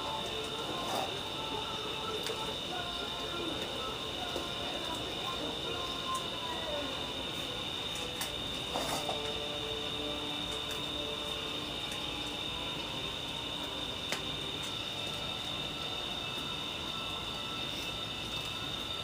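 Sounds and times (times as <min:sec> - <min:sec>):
high-pitched drone: 0:00.0 - 0:19.0.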